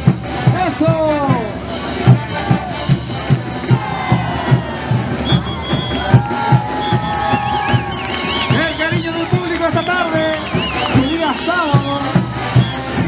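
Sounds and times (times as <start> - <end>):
bass drum beating steadily: 0.0 - 13.0.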